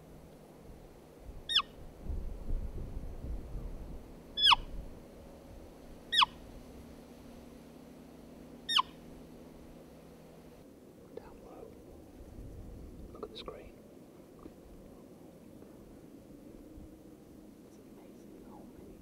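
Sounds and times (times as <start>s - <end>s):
high squeaking deer call: 1.5s - 1.8s, 4.4s - 4.7s, 6.1s - 6.4s, 8.6s - 9.1s.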